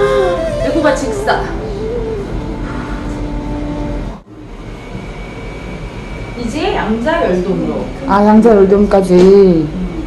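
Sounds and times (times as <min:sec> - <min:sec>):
held low tone: 0:00.0 - 0:05.0
steady hum: 0:00.0 - 0:10.0.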